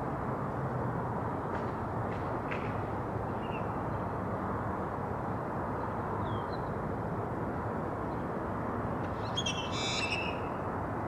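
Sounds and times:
bird high call: 9.2s - 10.6s.

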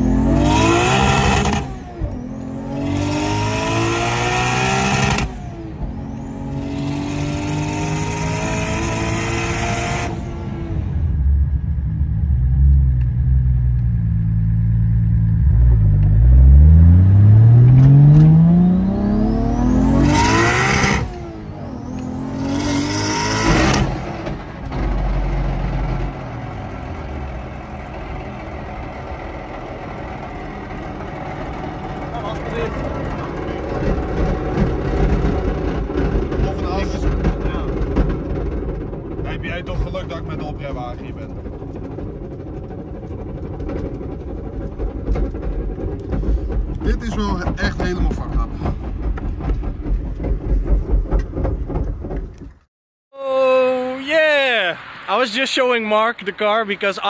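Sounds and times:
car engine accelerating hard: 0.0s - 51.9s.

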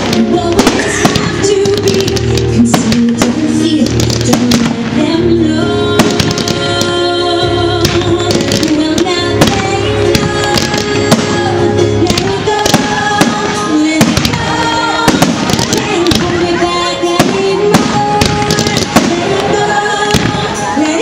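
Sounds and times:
fireworks bursting with sharp bangs: 0.0s - 21.0s
loud music with sustained notes: 0.0s - 21.0s.

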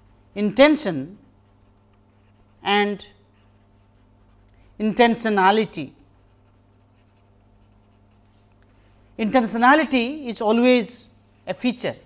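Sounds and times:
marker pen writing on paper: 0.0s - 4.6s, 6.2s - 9.0s
low steady hum: 0.0s - 12.0s.

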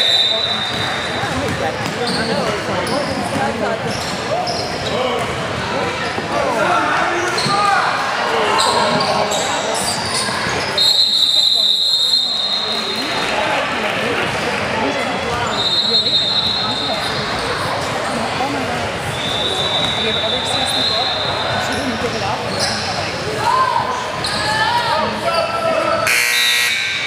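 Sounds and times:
shouts and chatter in a gym: 0.0s - 27.0s.

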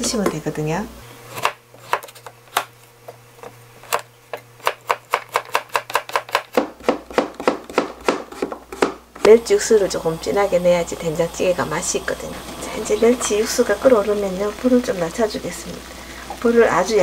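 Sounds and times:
knife slicing squash on board: 1.3s - 2.7s.

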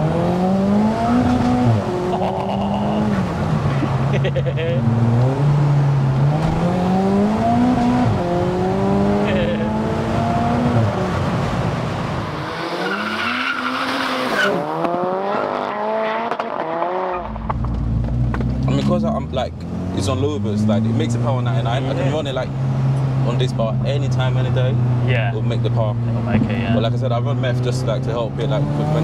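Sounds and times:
car engine accelerating hard: 0.0s - 29.0s.

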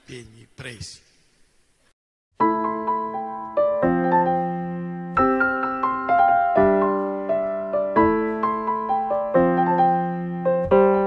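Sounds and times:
slow piano music: 2.4s - 11.0s.

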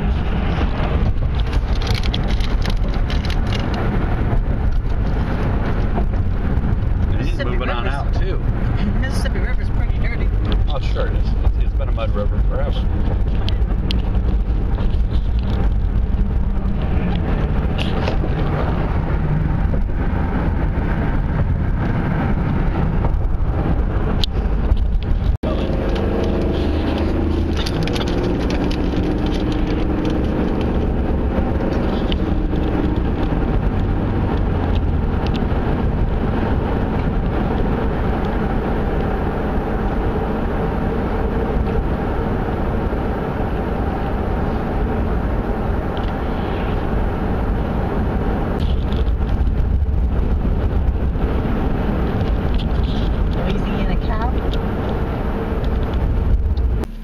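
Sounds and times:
road noise inside moving car: 0.0s - 57.0s.

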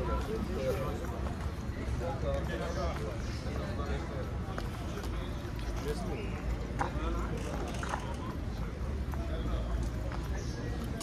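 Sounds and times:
low street rumble: 0.0s - 11.0s
people talking: 0.0s - 11.0s
footsteps on stone paving: 9.0s - 11.0s.

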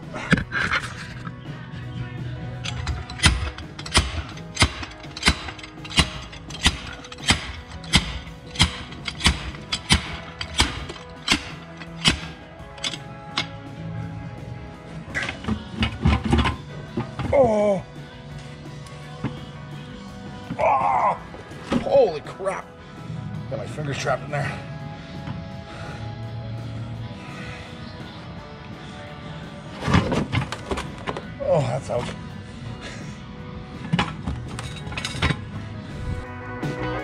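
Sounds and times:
background music: 0.0s - 37.0s
slide hammer striking: 2.7s - 12.4s.

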